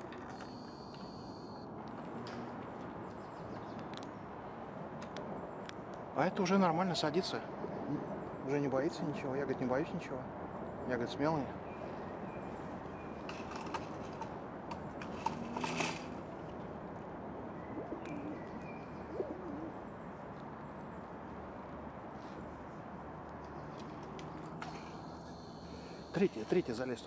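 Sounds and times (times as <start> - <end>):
distant bird calls: 0.0 - 16.6, 17.4 - 27.0
outdoor hush: 0.0 - 27.0.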